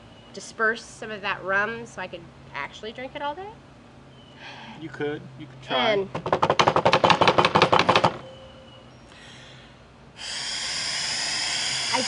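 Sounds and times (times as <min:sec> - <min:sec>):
breath blown into breathalyzer: 0:10.2 - 0:12.0.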